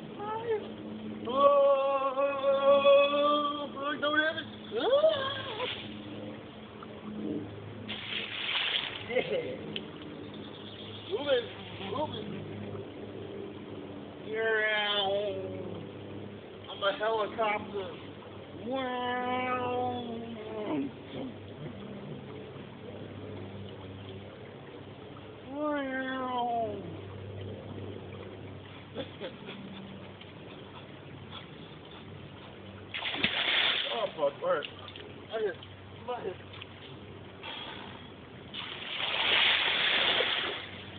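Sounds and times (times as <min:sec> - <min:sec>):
faint steady hum: 0:00.0 - 0:40.9
person yelling: 0:01.3 - 0:05.3
water splashing in creek: 0:07.8 - 0:10.1, 0:28.0 - 0:37.4, 0:38.5 - 0:40.9.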